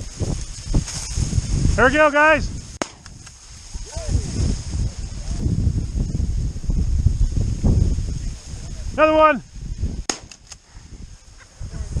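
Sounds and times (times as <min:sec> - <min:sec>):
wind rumbling on microphone: 0:00.0 - 0:12.0
faint gunshot cracks: 0:02.8 - 0:03.1, 0:10.1 - 0:10.6
shotgun shot: 0:02.8 - 0:03.1, 0:10.1 - 0:10.6.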